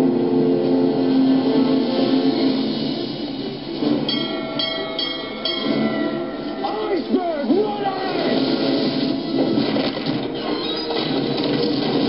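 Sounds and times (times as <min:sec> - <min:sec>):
warning bell ringing: 0:04.1 - 0:07.0.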